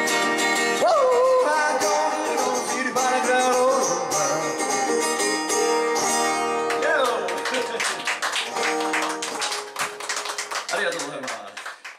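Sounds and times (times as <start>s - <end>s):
acoustic guitar strumming: 0.0s - 10.1s.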